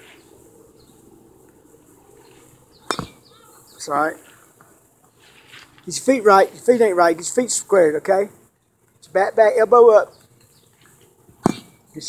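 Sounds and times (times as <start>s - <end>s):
baseball bat hitting ball: 2.8s - 3.3s, 11.4s - 11.8s.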